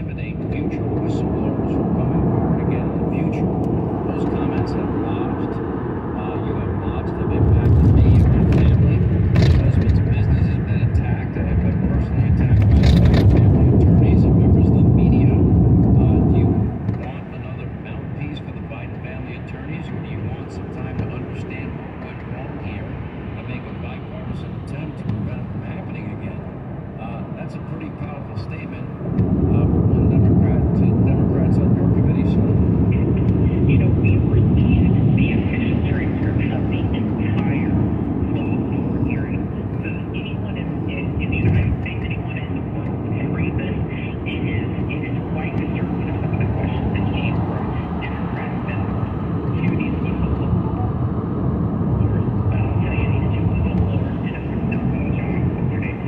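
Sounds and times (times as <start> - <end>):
road and tyre noise inside car: 0.0 - 56.0.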